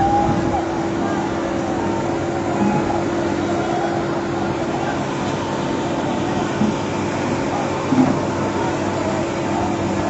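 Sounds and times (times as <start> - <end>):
fire truck engines droning: 0.0 - 10.0.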